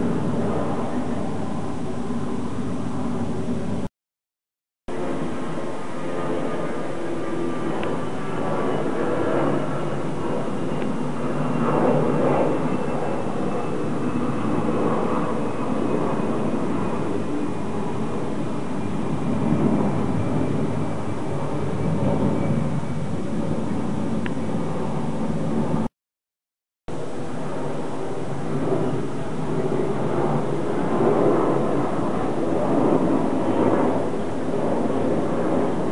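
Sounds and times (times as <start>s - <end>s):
jet airliner passing overhead: 0.0s - 3.9s, 4.9s - 25.9s, 26.9s - 35.9s.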